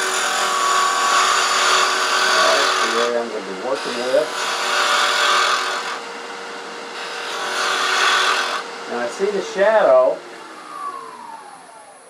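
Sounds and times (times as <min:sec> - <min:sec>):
wood lathe motor whine spinning down: 0:00.0 - 0:12.0.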